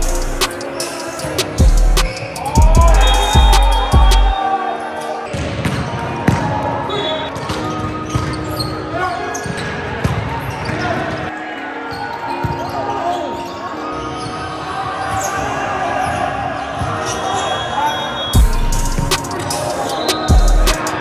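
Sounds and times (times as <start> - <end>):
sneakers squeaking: 0.0 - 4.4, 5.2 - 21.0
players calling out: 0.0 - 5.4
background music: 0.0 - 9.1, 11.3 - 21.0.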